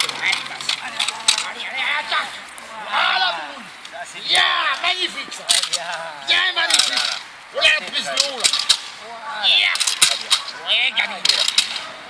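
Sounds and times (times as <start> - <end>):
excited voices calling out: 0.0 - 12.0
sharp cracks or slaps: 5.5 - 6.0, 8.2 - 9.0, 9.6 - 10.5, 11.2 - 11.9.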